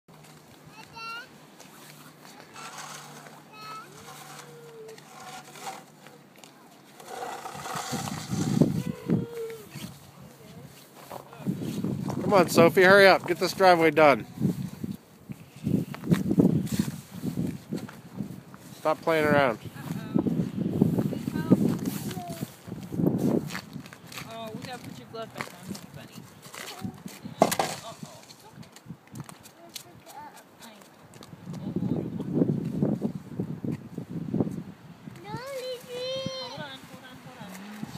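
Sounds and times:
small children calling: 0:00.7 - 0:01.4, 0:02.3 - 0:05.8, 0:07.0 - 0:10.0, 0:35.2 - 0:36.8
snow shovel scraping asphalt: 0:01.6 - 0:06.2, 0:06.8 - 0:10.0
shovel clatter: 0:02.6 - 0:03.4
child squealing: 0:03.6 - 0:05.0, 0:08.7 - 0:09.9.

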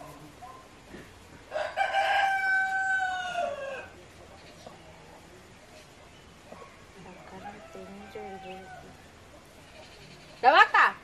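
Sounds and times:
rooster crowing: 0:01.5 - 0:04.0, 0:07.3 - 0:09.0.

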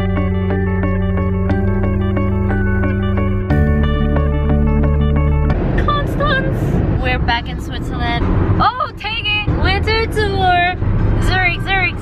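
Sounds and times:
road and engine rumble: 0:00.0 - 0:12.0
people talking in car: 0:05.6 - 0:12.0.

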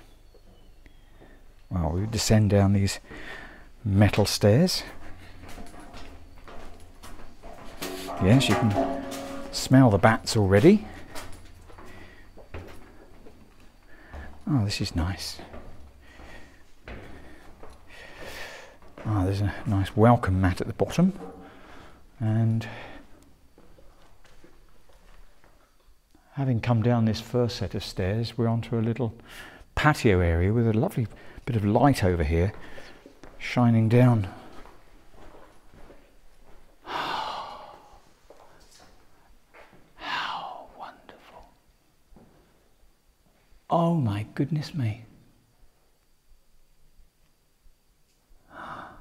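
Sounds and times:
faint breaths: 0:00.8 - 0:01.7, 0:03.0 - 0:03.9, 0:04.7 - 0:06.1, 0:10.8 - 0:14.5, 0:15.3 - 0:19.7, 0:21.2 - 0:23.4, 0:29.2 - 0:29.8, 0:31.1 - 0:31.5, 0:32.5 - 0:33.3, 0:36.8 - 0:39.4, 0:40.0 - 0:41.4, 0:48.4 - 0:49.0
footsteps on metal stairs: 0:04.0 - 0:19.9, 0:20.9 - 0:22.0
man whispering an exclamation: 0:40.0 - 0:41.6.

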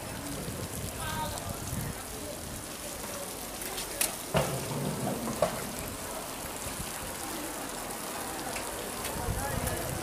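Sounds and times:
low voices of passers-by: 0:00.0 - 0:10.0
steady outdoor hiss: 0:00.0 - 0:10.0.

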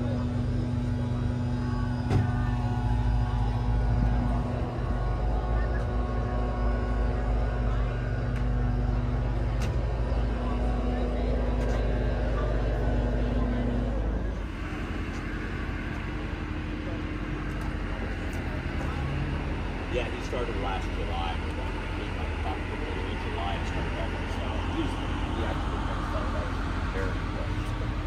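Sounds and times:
low mechanical hum: 0:00.0 - 0:28.0.

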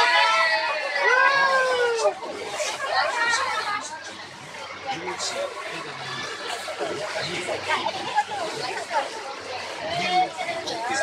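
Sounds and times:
quiet chatter: 0:00.0 - 0:11.0.

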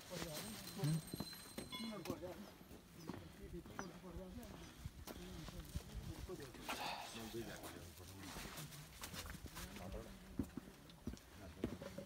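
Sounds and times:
people talking in background: 0:00.0 - 0:12.0.

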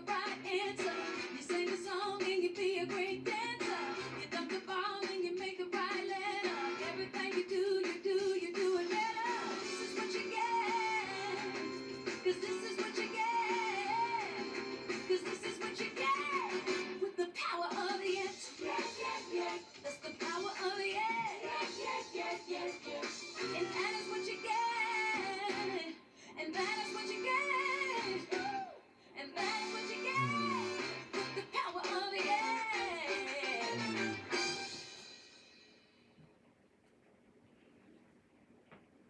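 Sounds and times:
pop song from television: 0:00.0 - 0:36.1.

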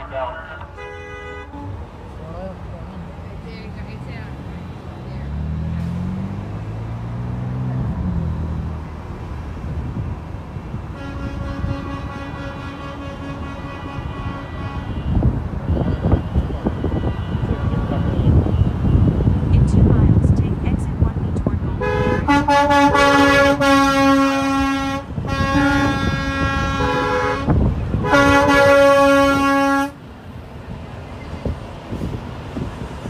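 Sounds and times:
car horns honking: 0:00.0 - 0:02.0, 0:10.9 - 0:30.0
road noise: 0:00.0 - 0:33.0
vehicle engine accelerating: 0:02.1 - 0:10.9.

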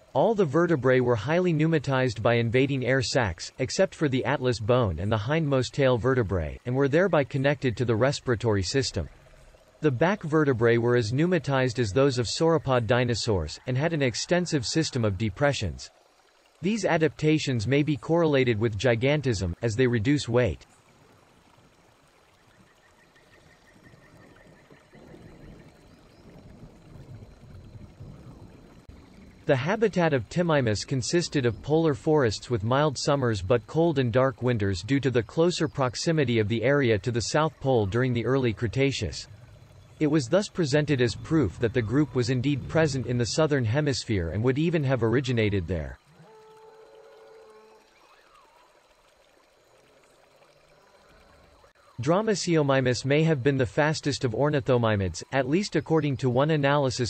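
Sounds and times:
faint flowing water: 0:00.0 - 0:57.0.

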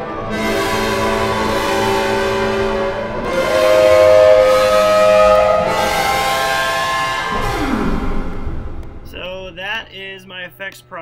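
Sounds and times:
electric guitar sustained notes: 0:00.0 - 0:09.9.

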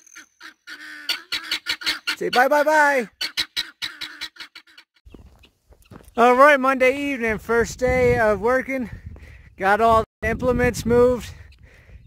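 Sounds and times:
guineafowl calling: 0:00.0 - 0:06.0.

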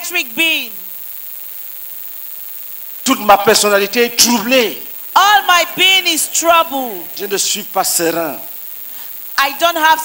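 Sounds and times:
electrical hiss: 0:00.0 - 0:10.0
faint mains hum: 0:00.0 - 0:10.0.

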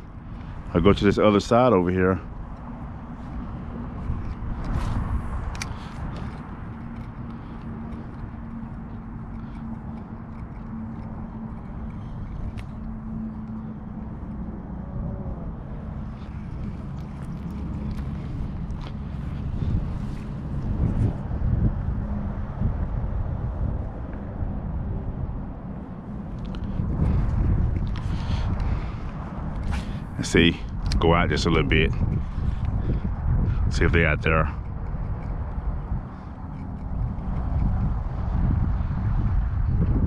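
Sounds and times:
constant low hum: 0:00.0 - 0:40.0
low rumble: 0:00.0 - 0:40.0
wind buffeting microphone: 0:00.0 - 0:40.0.

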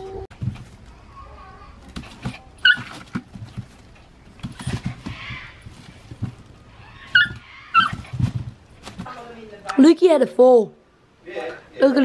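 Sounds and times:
plastic bag rustling and knocking: 0:00.3 - 0:00.9, 0:01.9 - 0:09.4
puppy yipping: 0:02.6 - 0:03.2, 0:06.8 - 0:08.3.

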